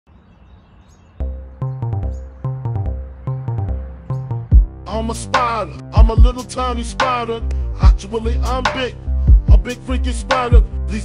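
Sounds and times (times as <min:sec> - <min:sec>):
bird chirps: 0:00.1 - 0:04.5
hip-hop backing beat: 0:01.2 - 0:11.0.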